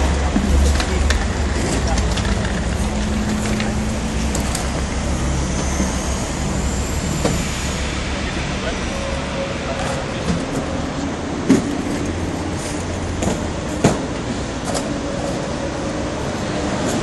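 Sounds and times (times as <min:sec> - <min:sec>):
low rumble of street traffic: 0:00.0 - 0:17.0.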